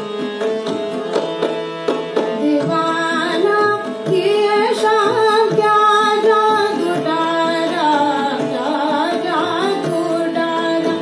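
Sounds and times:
harmonium: 0:00.0 - 0:11.0
woman singing devotional song: 0:02.4 - 0:11.0.

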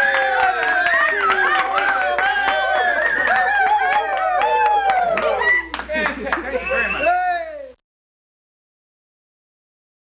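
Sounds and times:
hand claps: 0:00.0 - 0:06.6.

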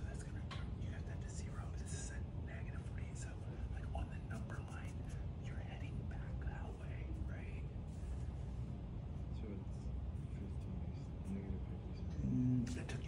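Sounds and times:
person whispering: 0:00.0 - 0:07.7, 0:10.4 - 0:13.0
low room hum: 0:00.0 - 0:13.0.

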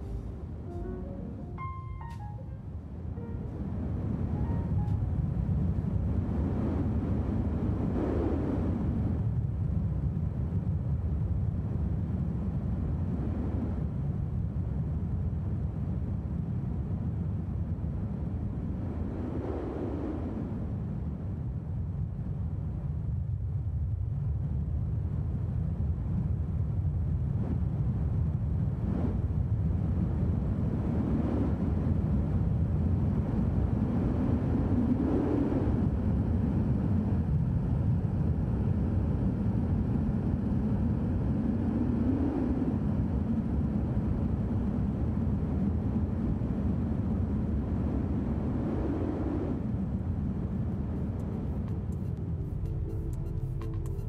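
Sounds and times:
wind rushing over microphone: 0:00.0 - 0:54.0.

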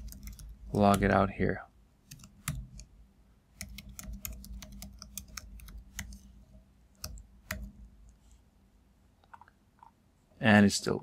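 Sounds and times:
computer keyboard typing: 0:00.0 - 0:01.2, 0:02.1 - 0:02.9, 0:03.6 - 0:06.3, 0:06.9 - 0:08.2.

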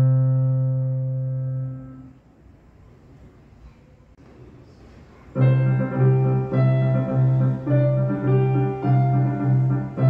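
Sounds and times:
low piano chord: 0:00.0 - 0:02.2, 0:05.4 - 0:10.0.

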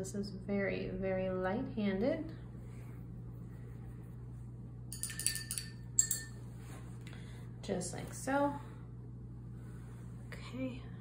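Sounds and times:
paintbrush clinking on glass jar: 0:04.9 - 0:06.4.

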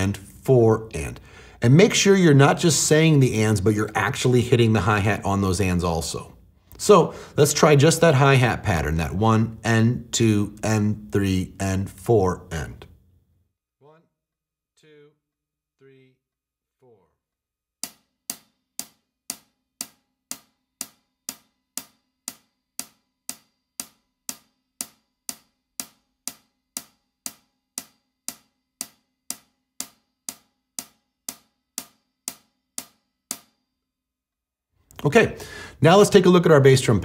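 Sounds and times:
hi-hat struck with drumstick: 0:17.8 - 0:33.6.

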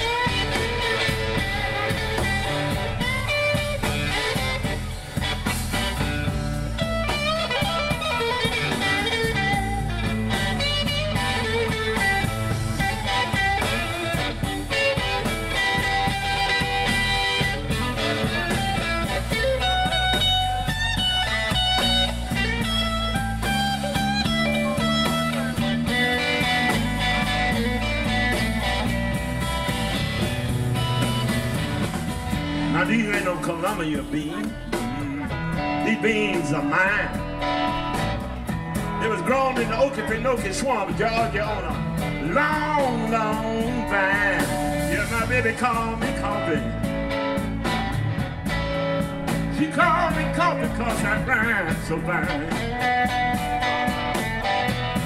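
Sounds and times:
bass: 0:00.0 - 0:55.0
drums: 0:00.0 - 0:55.0
electric guitar lead: 0:00.0 - 0:55.0.

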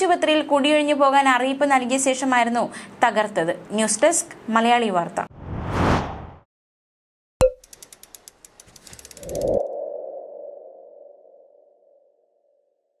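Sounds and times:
whoosh: 0:05.3 - 0:06.4
fast run of ticks: 0:07.6 - 0:09.7.

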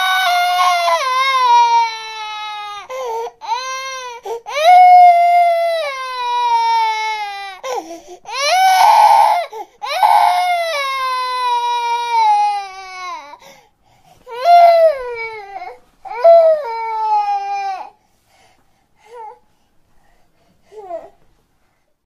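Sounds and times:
toddler crying: 0:00.0 - 0:13.4, 0:14.3 - 0:18.0.

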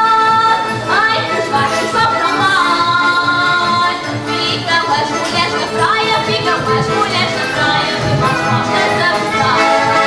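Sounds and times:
accordion: 0:00.0 - 0:10.0
guitars: 0:00.0 - 0:10.0
woman singing: 0:00.0 - 0:10.0.

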